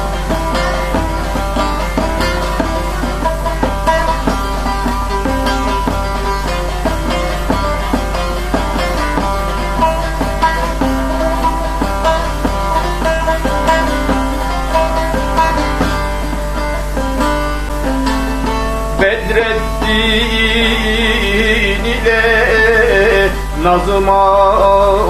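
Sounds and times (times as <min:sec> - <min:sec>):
plucked lute melody: 0:00.0 - 0:25.0
steady low hum: 0:00.0 - 0:25.0.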